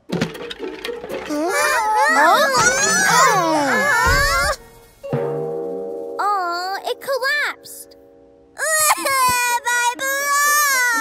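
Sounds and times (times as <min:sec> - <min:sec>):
cartoon voice crying: 0:01.3 - 0:04.6, 0:08.6 - 0:11.0.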